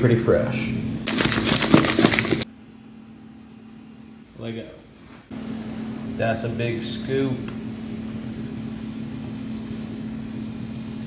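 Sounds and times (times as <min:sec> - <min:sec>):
appliance electrical hum: 0:00.0 - 0:11.0.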